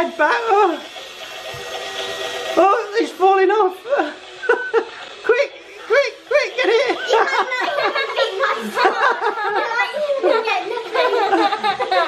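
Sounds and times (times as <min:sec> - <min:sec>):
child giggling: 0:06.4 - 0:12.0.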